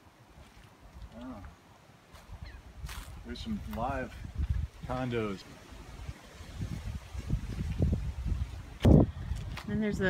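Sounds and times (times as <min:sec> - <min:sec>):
wind buffeting microphone: 0:02.2 - 0:10.0.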